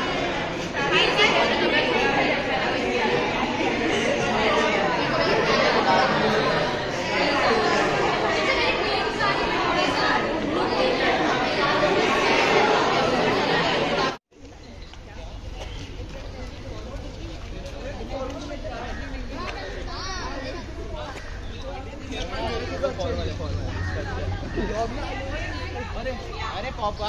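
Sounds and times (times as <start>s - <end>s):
students chattering: 0.0s - 27.0s.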